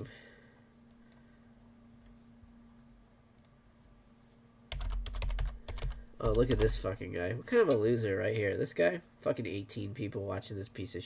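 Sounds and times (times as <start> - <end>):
faint steady hum: 0.0 - 11.0
computer keyboard typing: 4.7 - 6.8.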